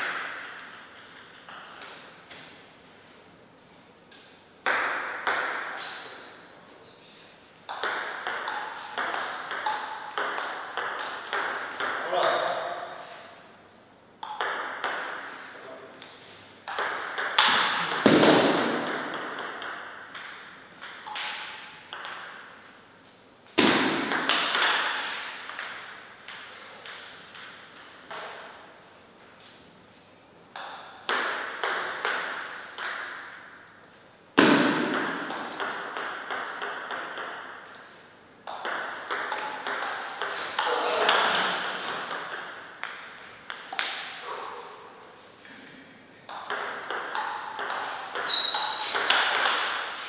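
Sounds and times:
table tennis ball clicking: 0.0s - 2.0s, 16.7s - 22.3s.

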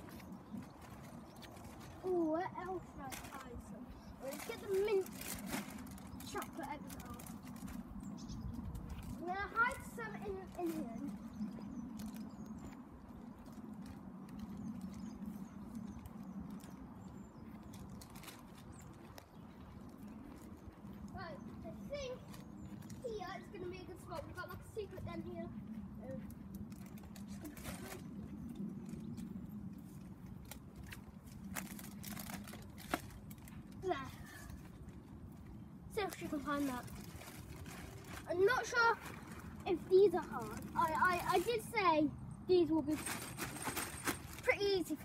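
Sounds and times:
light rustles and ticks: 0.0s - 45.0s.

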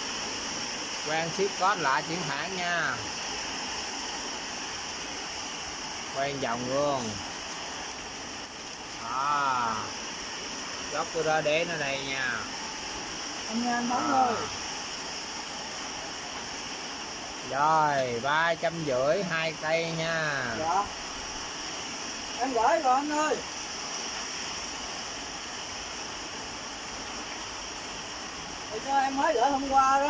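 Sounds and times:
heavy rain falling: 0.0s - 30.0s.

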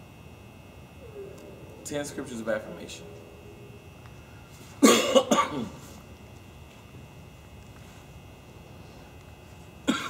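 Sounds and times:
man coughing: 4.8s - 5.8s.

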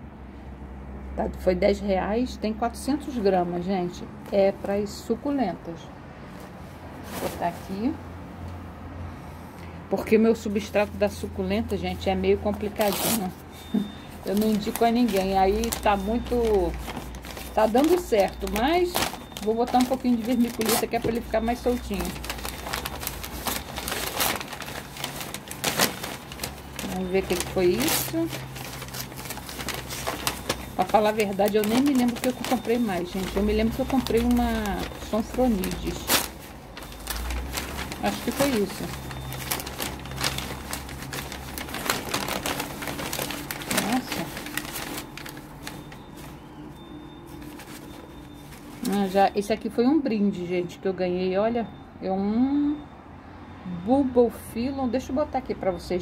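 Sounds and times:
packing paper rustling and crinkling: 6.4s - 8.0s, 10.0s - 49.5s.

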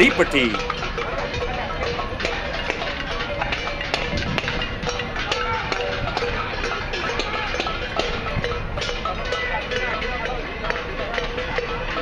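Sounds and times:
voices: 0.0s - 0.6s.

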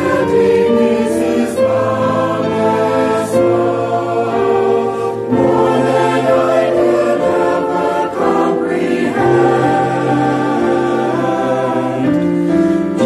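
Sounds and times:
choir singing a hymn: 0.0s - 13.0s.

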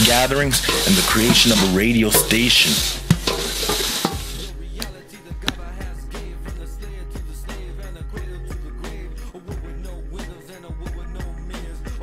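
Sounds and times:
paddle stirring rice in metal pot: 0.0s - 4.6s
music: 0.0s - 12.0s.

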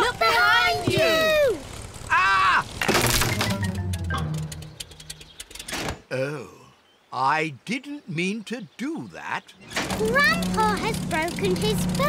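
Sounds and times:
clicks and rattles: 2.8s - 6.0s, 9.7s - 12.0s
loud clatter: 9.7s - 12.0s.

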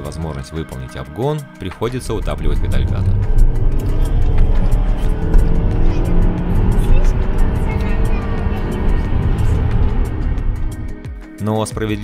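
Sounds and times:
background music: 0.0s - 12.0s
car engine at full throttle: 1.9s - 11.2s.

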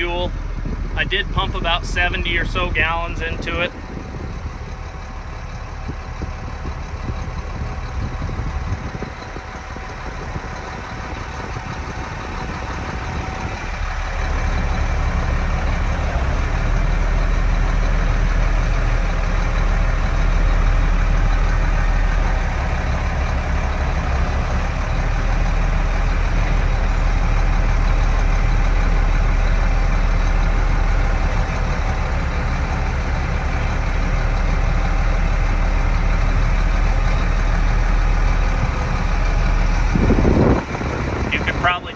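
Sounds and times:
tractor diesel engine running: 0.0s - 41.9s.

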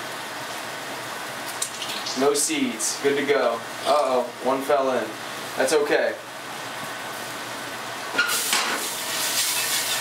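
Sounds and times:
sauce sizzling in a skillet: 0.1s - 2.5s, 6.5s - 10.0s
whisk stirring sauce: 9.0s - 10.0s.

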